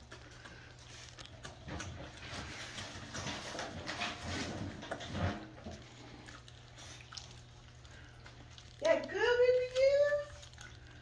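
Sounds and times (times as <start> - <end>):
dog chewing and licking food: 0.0 - 11.0.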